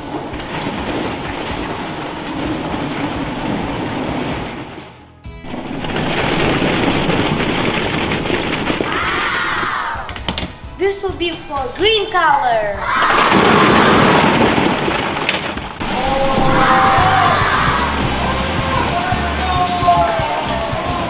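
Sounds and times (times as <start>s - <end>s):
plastic balls clattering down stairs: 0.0s - 10.6s, 13.0s - 18.9s
music: 4.8s - 8.1s, 8.8s - 13.0s, 15.9s - 21.0s.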